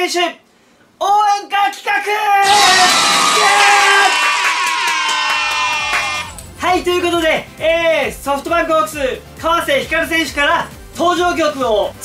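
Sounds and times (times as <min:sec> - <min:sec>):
man shouting yeah: 0:02.1 - 0:06.3
crowd cheering and whooping: 0:02.4 - 0:06.4.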